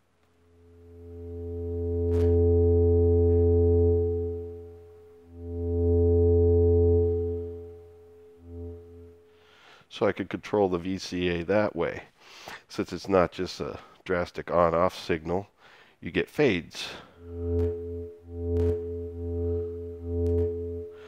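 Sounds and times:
synthesizer low note: 0.4 - 9.2, 17.1 - 21.0.

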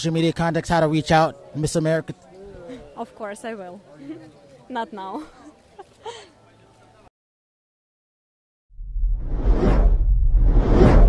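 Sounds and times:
cinematic whooshes: 8.8 - 11.0
steady deep rumble: 8.8 - 11.0.

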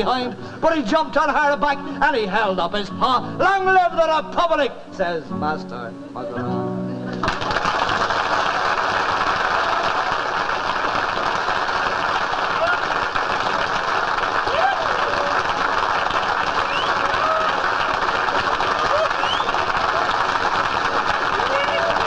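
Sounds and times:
audience applauding: 7.1 - 22.0.

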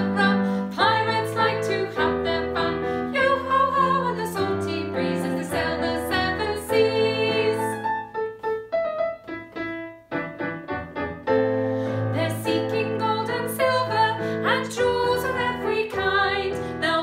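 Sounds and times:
woman singing children's song: 0.0 - 7.8, 12.2 - 17.0
electronic keyboard piano: 0.0 - 16.8.

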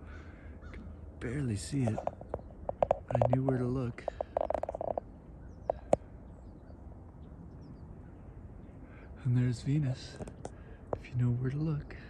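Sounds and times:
faint outdoor background: 0.0 - 12.0.

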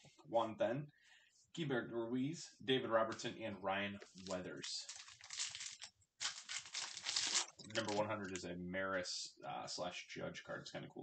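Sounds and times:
plastic wrapper crinkling: 4.0 - 8.4.

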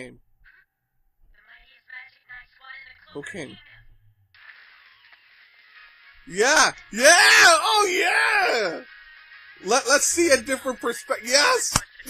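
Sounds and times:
faint soundtrack music: 0.0 - 12.0.

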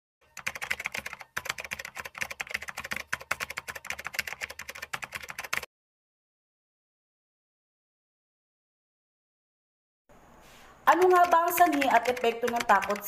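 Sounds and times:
keyboard typing clicks: 0.3 - 5.7, 10.9 - 13.0.

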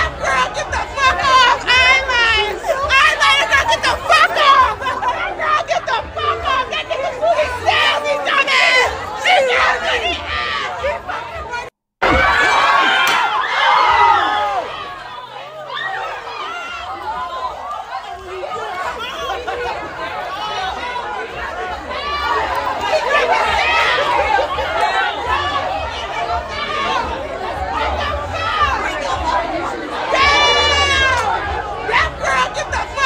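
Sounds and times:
crowd talking and calling out: 0.0 - 33.0
loud high shout: 0.0 - 33.0.

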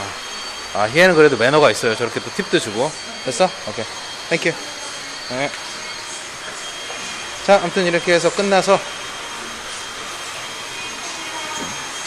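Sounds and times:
high-pitched whine: 0.0 - 12.0.

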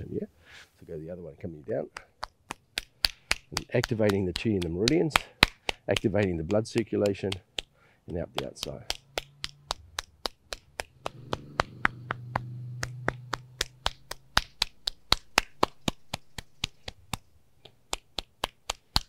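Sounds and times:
palm slapping skin: 1.9 - 19.0
low steady hum: 8.2 - 16.5.

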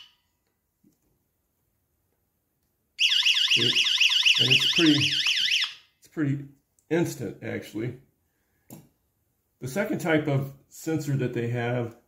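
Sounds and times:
warbling electronic alarm tone: 3.0 - 5.8.

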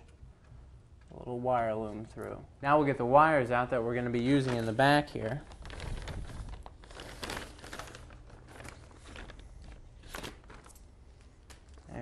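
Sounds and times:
plastic bag crinkling: 4.1 - 12.0.

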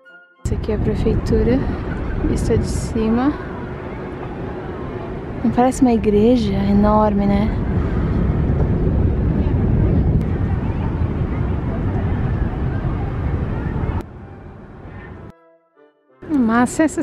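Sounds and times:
wind buffeting microphone: 0.5 - 15.3.

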